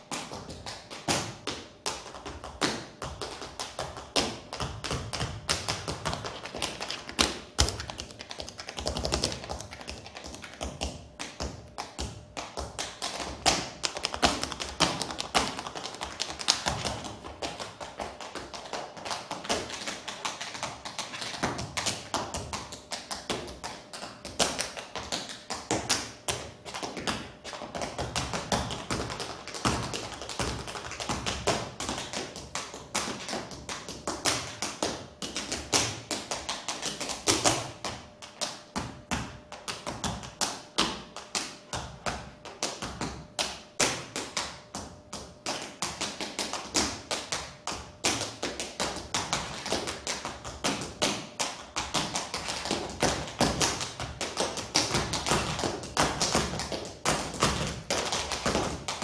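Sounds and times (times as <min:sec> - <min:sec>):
tap shoes on wooden floor: 0:00.0 - 0:59.0.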